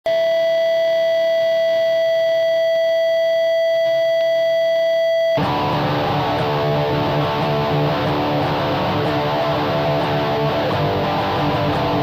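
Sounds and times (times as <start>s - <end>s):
electric guitar playing: 5.4s - 12.0s
steady tone: 5.4s - 12.0s.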